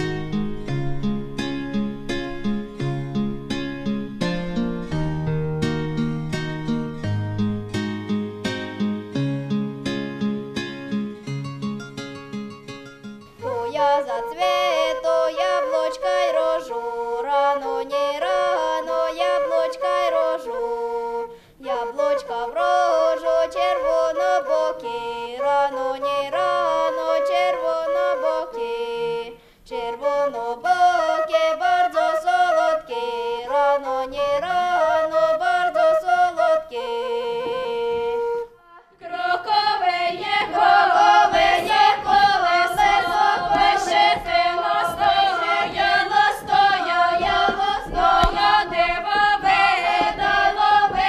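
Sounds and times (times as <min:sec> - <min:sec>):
wooden flute melody: 0:13.1 - 0:51.0
girl singing: 0:13.5 - 0:20.9, 0:21.6 - 0:51.0
group of voices singing: 0:38.8 - 0:51.0.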